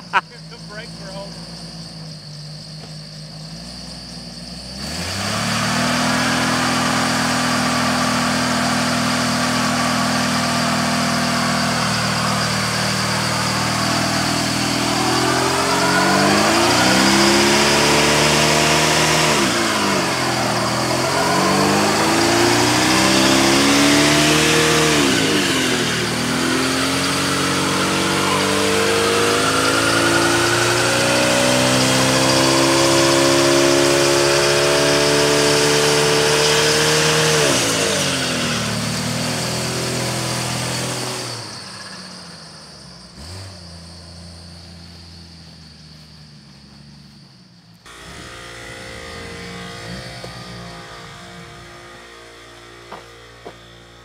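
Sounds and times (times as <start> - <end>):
car engine revving hard: 3.5 - 45.3, 47.9 - 54.0.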